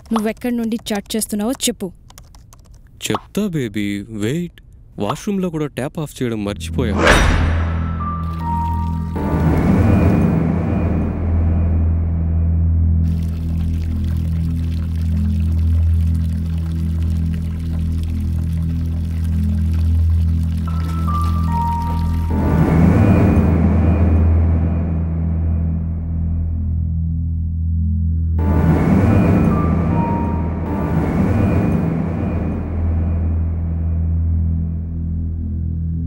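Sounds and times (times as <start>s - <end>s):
low droning suspense music: 6.6s - 36.0s
music stings: 7.0s - 13.2s, 20.7s - 27.1s, 28.4s - 35.6s
water running from tap into basin: 13.1s - 22.2s.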